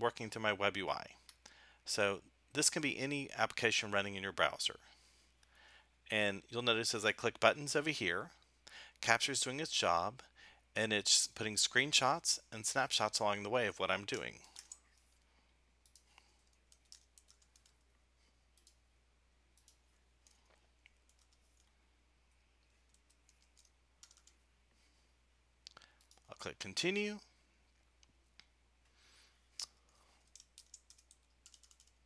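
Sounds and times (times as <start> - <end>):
keyboard and mouse clicks: 15.8 - 17.8, 18.6 - 18.8, 19.6 - 21.7, 22.6 - 24.4, 29.6 - 32.0.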